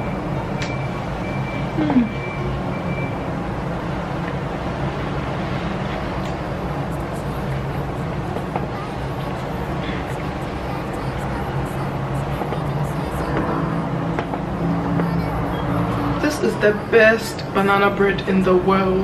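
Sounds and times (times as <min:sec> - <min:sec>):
brief murmur: 0:01.7 - 0:02.4.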